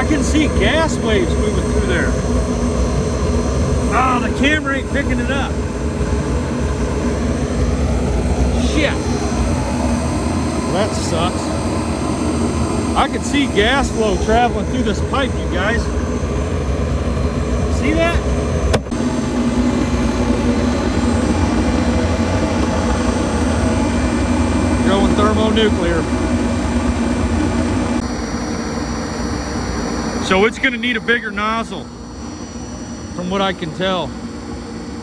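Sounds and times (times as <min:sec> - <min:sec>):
burner flame and air rushing: 0:00.0 - 0:30.8
faint steady whine: 0:00.0 - 0:35.0.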